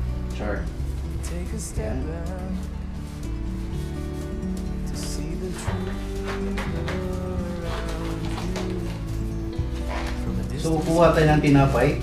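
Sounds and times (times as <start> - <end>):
background music held tones: 0.0 - 12.0
plastic gloves rustling: 0.6 - 12.0.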